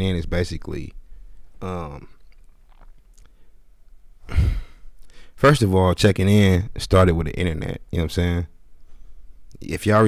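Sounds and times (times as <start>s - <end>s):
man sighing: 4.2s - 5.3s.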